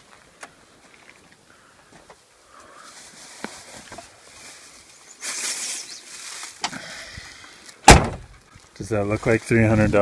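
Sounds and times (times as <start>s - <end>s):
plastic bag rustling: 2.9s - 6.6s.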